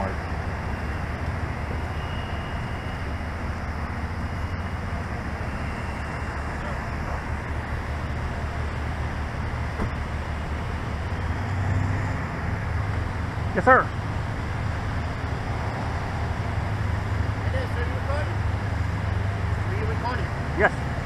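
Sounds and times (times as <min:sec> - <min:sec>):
low engine hum: 0:00.0 - 0:21.0
road traffic hiss: 0:00.0 - 0:21.0.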